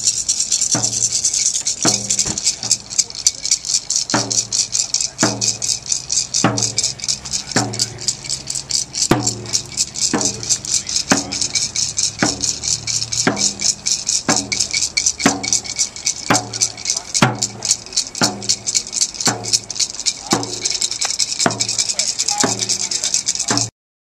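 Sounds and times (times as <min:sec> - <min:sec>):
drum beating steadily: 0:00.0 - 0:23.7
rattle shaken rapidly: 0:00.0 - 0:23.7.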